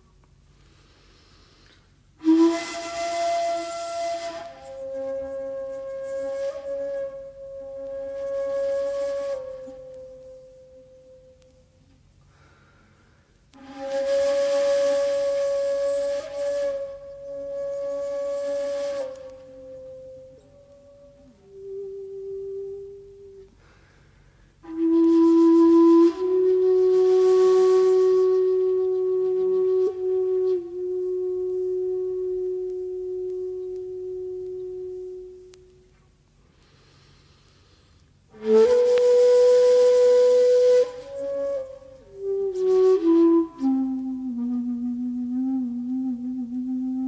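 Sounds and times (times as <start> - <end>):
breathy bamboo flute notes: 0.0 - 47.0.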